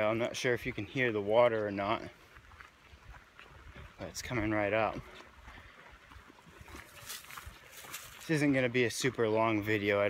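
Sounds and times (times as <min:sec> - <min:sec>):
footsteps on trail: 0:00.0 - 0:10.0
stream water running: 0:00.0 - 0:10.0.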